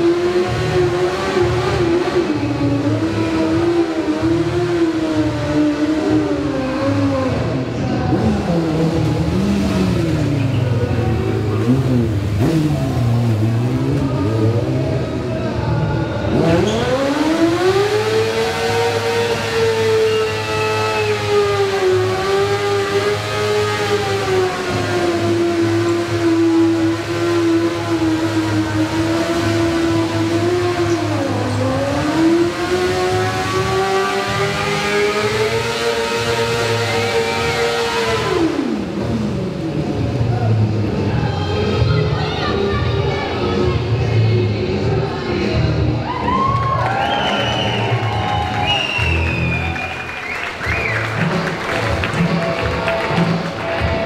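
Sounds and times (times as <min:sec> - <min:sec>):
motorcycle engine revving: 0:00.0 - 0:46.1.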